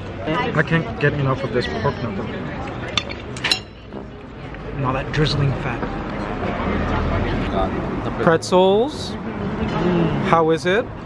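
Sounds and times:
low hum of outdoor background: 0:00.0 - 0:11.0.

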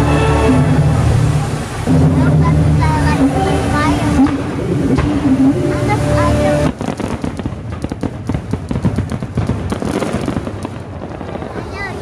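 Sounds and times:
fireworks crackling: 0:00.0 - 0:12.0.

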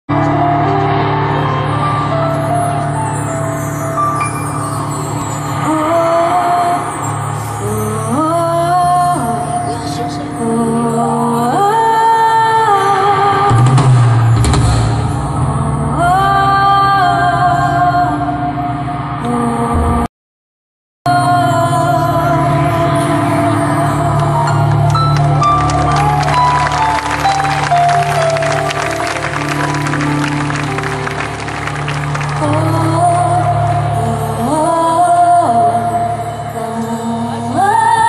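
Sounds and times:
live band music: 0:23.4 - 0:33.9
audience clapping: 0:24.1 - 0:34.0.

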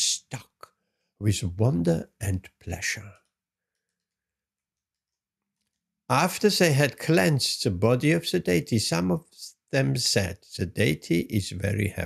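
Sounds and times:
person speaking: 0:00.0 - 0:03.3, 0:06.1 - 0:12.0
faint clicks: 0:02.4 - 0:06.0.

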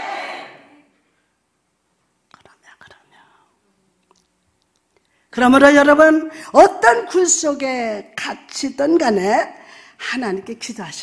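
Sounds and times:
person whispering: 0:02.3 - 0:03.7.

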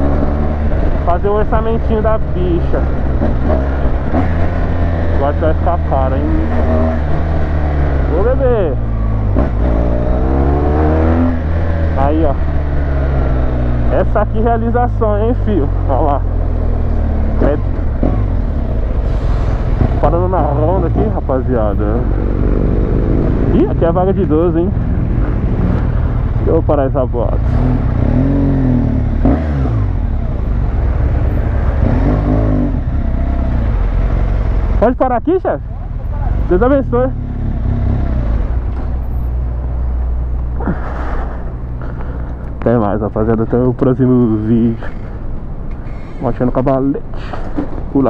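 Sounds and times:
rider speaking: 0:00.0 - 0:09.1, 0:10.4 - 0:18.2, 0:19.8 - 0:27.6, 0:34.7 - 0:38.6, 0:40.4 - 0:48.0
motorcycle engine accelerating: 0:00.0 - 0:45.8.

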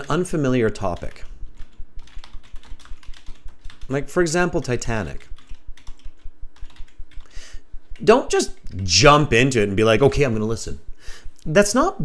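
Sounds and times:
typing on keyboard: 0:00.0 - 0:04.1, 0:04.7 - 0:08.7.

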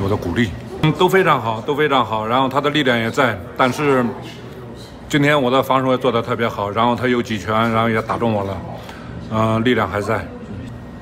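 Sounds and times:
man talking: 0:00.0 - 0:10.7.

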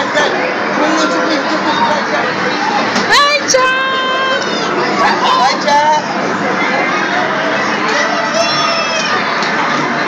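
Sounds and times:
people talking over each other: 0:00.0 - 0:10.0
children shouting: 0:02.6 - 0:05.6, 0:06.4 - 0:10.0
high drawn-out shout: 0:07.3 - 0:09.3.

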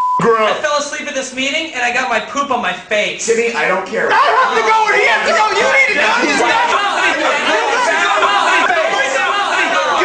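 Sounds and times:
people talking in raised voices: 0:04.0 - 0:10.0.

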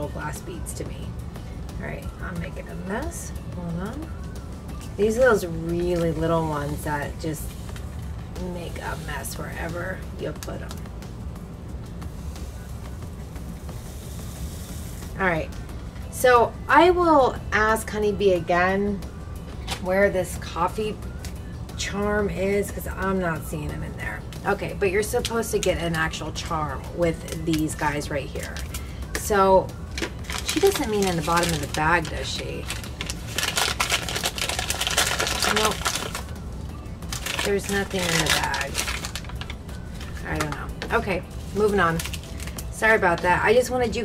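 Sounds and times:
paper bag crinkling: 0:29.9 - 0:36.4, 0:37.1 - 0:40.7, 0:41.3 - 0:42.7
paper rustling: 0:37.1 - 0:40.6.

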